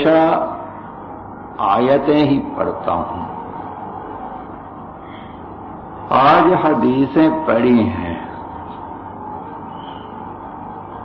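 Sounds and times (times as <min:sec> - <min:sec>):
faint low hum: 0:00.0 - 0:11.0
man speaking: 0:06.1 - 0:08.4.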